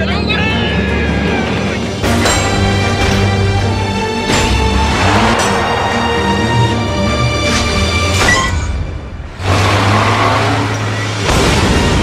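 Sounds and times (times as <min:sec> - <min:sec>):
vehicle engine straining: 0:00.5 - 0:11.4.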